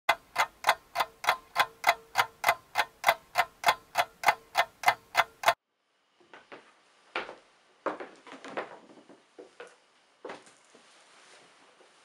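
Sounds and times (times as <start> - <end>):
clock ticking: 0.1 - 5.6.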